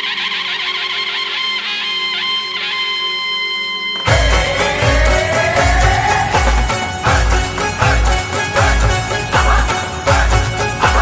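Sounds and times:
instrumental music over drone: 0:00.0 - 0:11.0.

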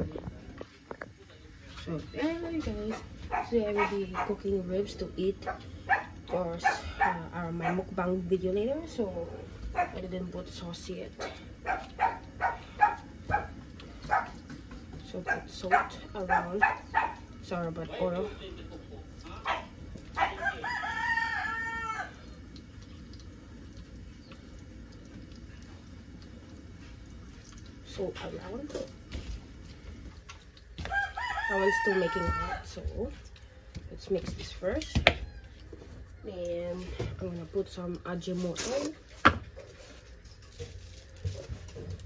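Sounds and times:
rooster crowing: 0:20.2 - 0:22.4, 0:30.8 - 0:32.7, 0:35.1 - 0:36.2.

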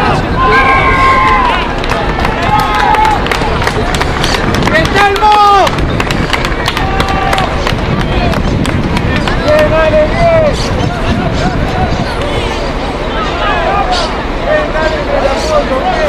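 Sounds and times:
outdoor noise: 0:00.0 - 0:16.0
voices shouting calls: 0:00.0 - 0:16.0.

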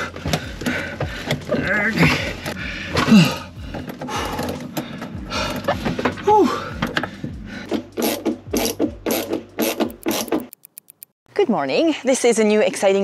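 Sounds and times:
ratchet clicking: 0:08.0 - 0:11.1.

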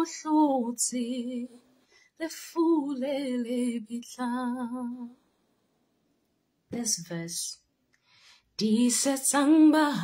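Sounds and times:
woman singing a hymn unaccompanied: 0:00.0 - 0:01.6, 0:02.2 - 0:05.2, 0:08.6 - 0:10.0.

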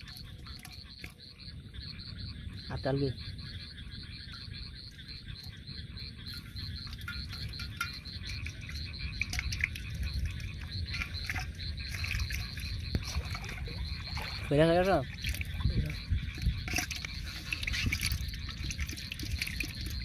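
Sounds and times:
frogs calling in pulsing chorus: 0:00.0 - 0:20.0.

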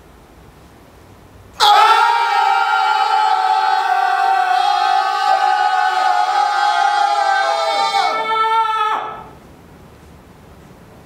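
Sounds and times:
men crying out together: 0:01.6 - 0:09.3.

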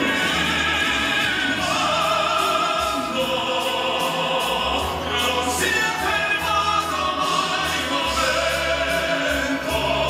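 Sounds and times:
instrumental accompaniment: 0:00.0 - 0:10.0
men singing operatic ballad: 0:00.0 - 0:10.0.

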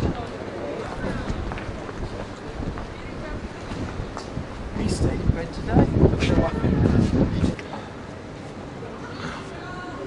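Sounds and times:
wind buffeting microphone: 0:00.0 - 0:07.8
faint voices: 0:00.0 - 0:10.0.

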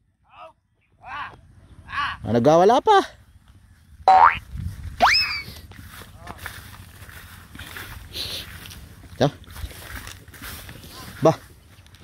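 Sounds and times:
man shouting rising call: 0:00.3 - 0:02.3, 0:05.0 - 0:05.5.

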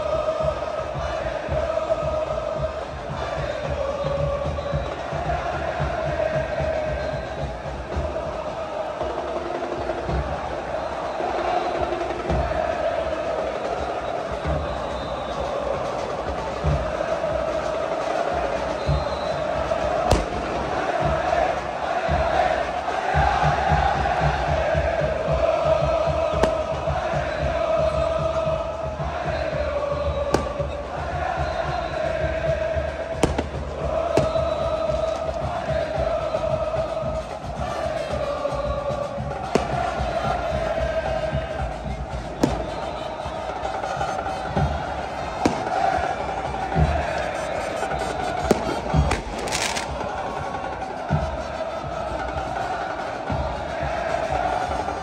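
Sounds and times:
crowd chanting in unison: 0:00.0 - 0:55.0
steady drumbeat: 0:00.0 - 0:55.0.

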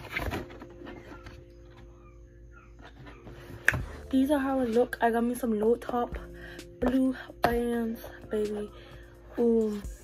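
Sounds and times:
cardboard rustling: 0:00.0 - 0:01.9.

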